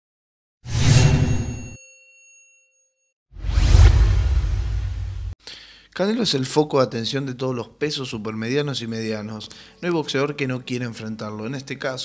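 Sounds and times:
rushing hit: 0:03.4 - 0:05.4.

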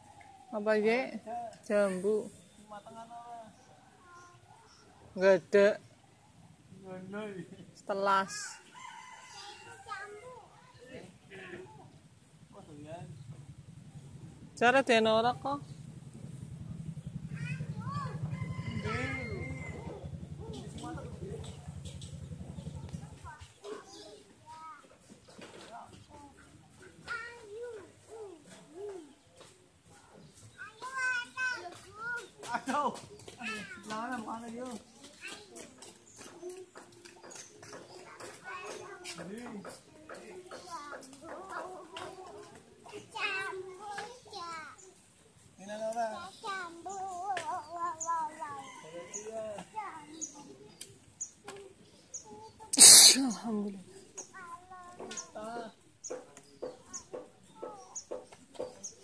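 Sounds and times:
high-pitched vocal calls: 0:52.2 - 0:54.4.

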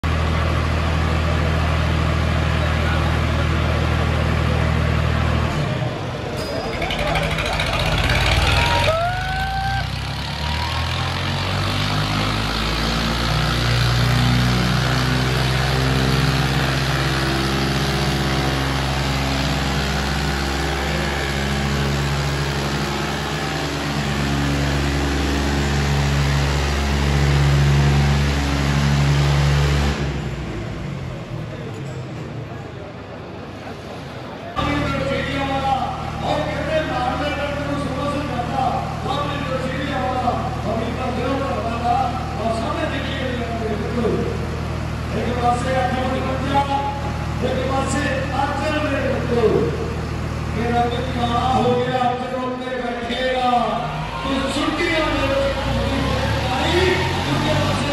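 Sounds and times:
tractor diesel engines running hard: 0:00.0 - 0:57.9
crowd voices: 0:00.3 - 0:13.9, 0:30.0 - 0:47.8, 0:49.2 - 0:57.9.

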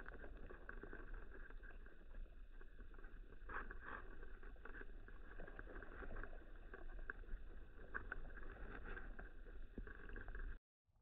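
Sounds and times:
small clicks and crackles: 0:00.0 - 0:10.6.

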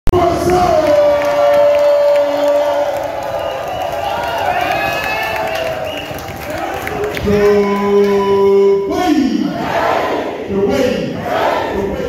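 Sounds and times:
crowd cheering and shouting: 0:00.2 - 0:08.6.

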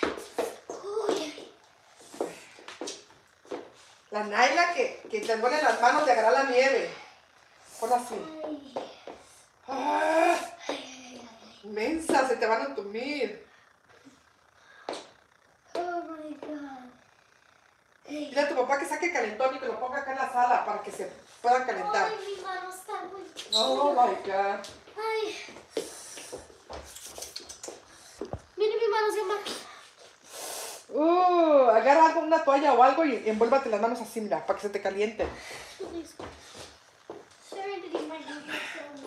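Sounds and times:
child's voice: 0:00.7 - 0:01.6, 0:10.6 - 0:11.6, 0:15.8 - 0:17.0, 0:21.9 - 0:23.5, 0:24.9 - 0:25.6, 0:28.6 - 0:29.7, 0:35.8 - 0:36.3, 0:37.5 - 0:39.0
girl whimpering: 0:09.7 - 0:10.6.

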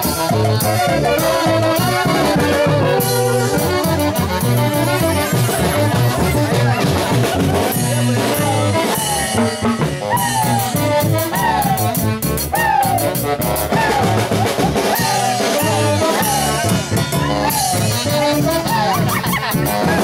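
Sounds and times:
drum kit beat: 0:00.0 - 0:20.0
wind instruments melody: 0:00.0 - 0:20.0.

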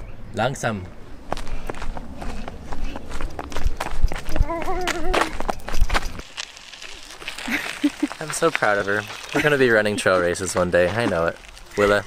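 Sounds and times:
running footsteps on pavement: 0:01.2 - 0:12.0.

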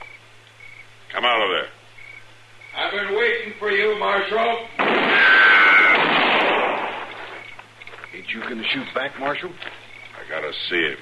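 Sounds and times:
gunshot: 0:04.8 - 0:07.1.

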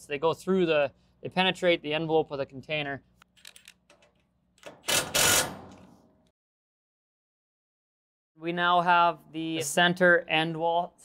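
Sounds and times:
cordless driver driving screw: 0:04.6 - 0:05.8.

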